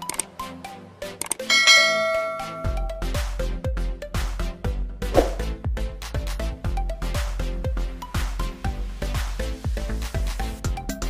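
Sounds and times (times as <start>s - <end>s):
background music: 0.0s - 11.0s
bell chime: 1.5s - 3.2s.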